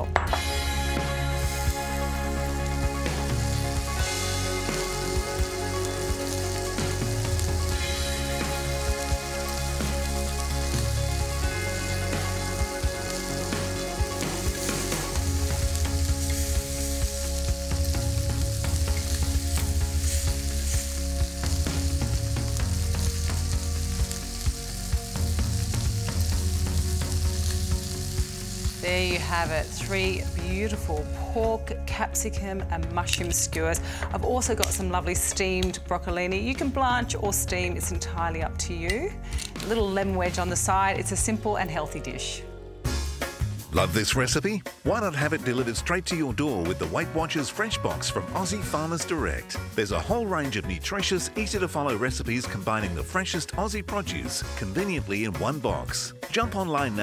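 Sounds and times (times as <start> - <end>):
food sizzling on a grill pan: 0.7 - 31.4.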